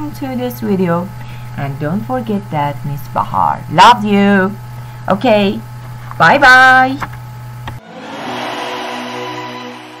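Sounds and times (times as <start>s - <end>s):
held synth chord: 7.8s - 10.0s.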